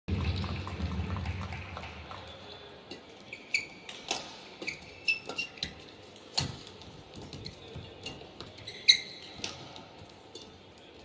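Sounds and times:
low rumble of hall and crowd: 0:00.1 - 0:04.6
faint short squeaks: 0:08.6 - 0:09.4.

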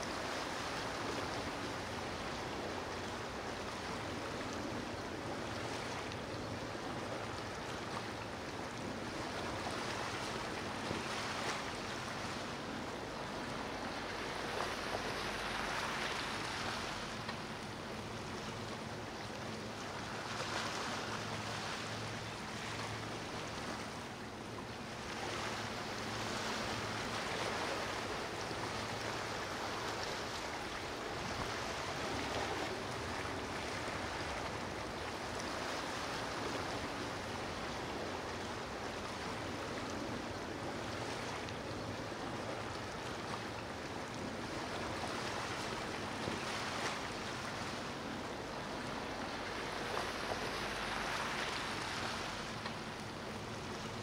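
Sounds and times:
low engine hum: 0:00.0 - 0:54.0
water rushing and churning: 0:00.0 - 0:54.0.

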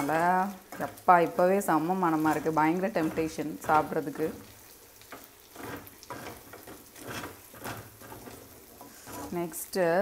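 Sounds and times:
chicken and onions sizzling: 0:00.0 - 0:10.0
spatula scraping pan: 0:00.0 - 0:10.0.

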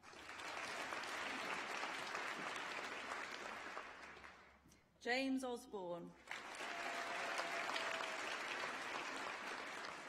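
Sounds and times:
audience applauding: 0:00.0 - 0:04.5, 0:06.2 - 0:10.0.

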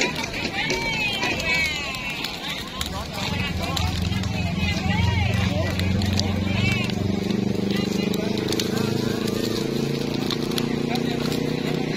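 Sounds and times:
people's voices: 0:00.0 - 0:11.9
wood fire crackling: 0:00.0 - 0:11.9
low engine hum: 0:02.9 - 0:11.9.

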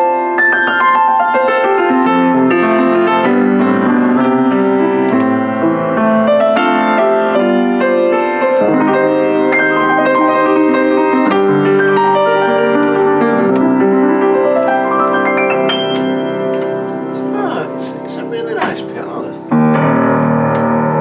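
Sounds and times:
upright piano chords and melody: 0:00.0 - 0:21.0.

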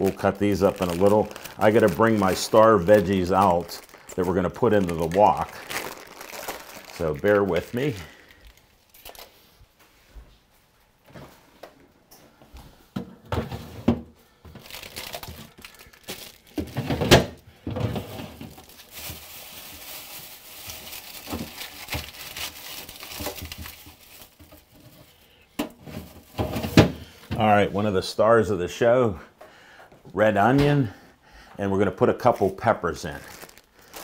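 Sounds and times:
plastic crinkling: 0:00.0 - 0:09.5, 0:14.5 - 0:17.3, 0:17.9 - 0:26.8, 0:32.2 - 0:34.0.

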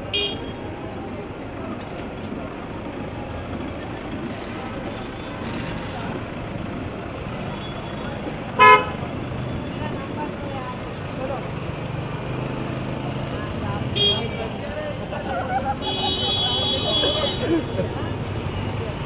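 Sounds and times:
street traffic noise: 0:00.0 - 0:19.0
car horn toot: 0:00.1 - 0:00.6, 0:08.6 - 0:09.0, 0:14.0 - 0:14.4, 0:15.8 - 0:17.5.

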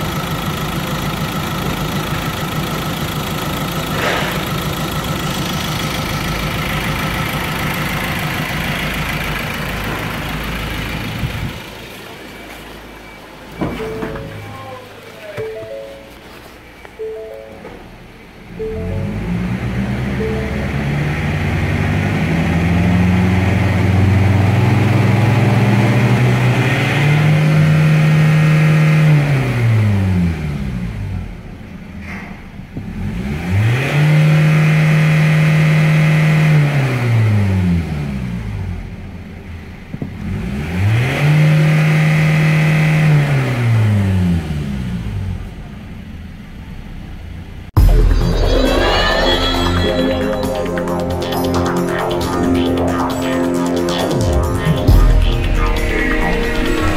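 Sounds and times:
diesel engine idling and revving: 0:00.0 - 0:15.2, 0:17.9 - 0:49.2, 0:49.8 - 0:56.9.

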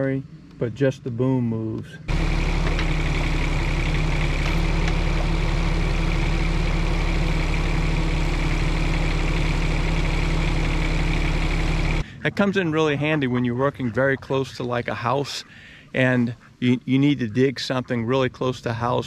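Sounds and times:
thin hydraulic whine: 0:02.1 - 0:12.1
diesel engine running: 0:02.1 - 0:13.2.

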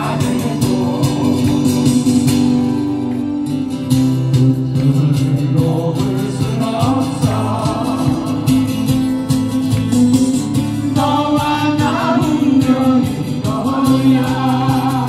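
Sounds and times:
people singing into microphones: 0:00.0 - 0:02.4, 0:04.9 - 0:09.2, 0:10.6 - 0:15.0
acoustic guitar: 0:00.0 - 0:15.0.

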